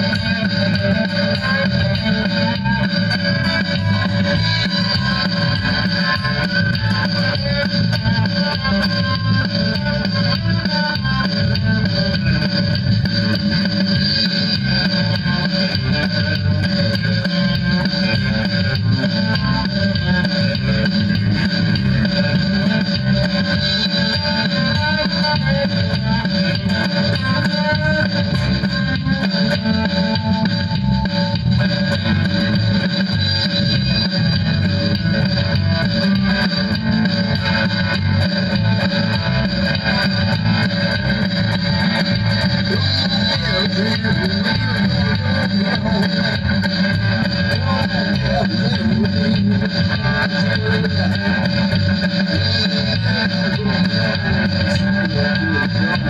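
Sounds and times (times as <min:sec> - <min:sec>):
bass line: 0:00.0 - 0:56.0
drums: 0:00.0 - 0:56.0
electric guitar: 0:00.0 - 0:56.0.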